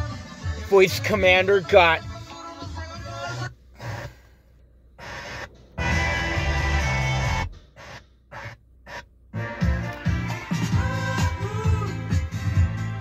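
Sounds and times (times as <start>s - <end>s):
car radio playing music: 0.0s - 13.0s.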